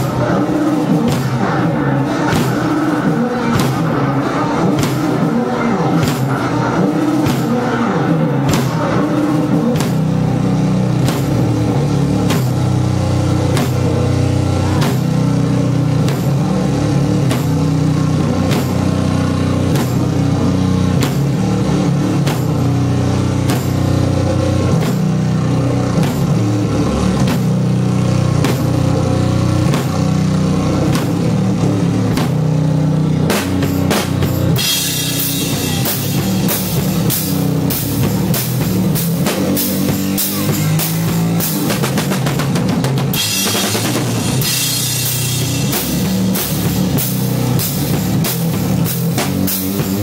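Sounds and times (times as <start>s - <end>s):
bass and guitar notes: 0.0s - 50.0s
drum kit beat: 0.0s - 50.0s.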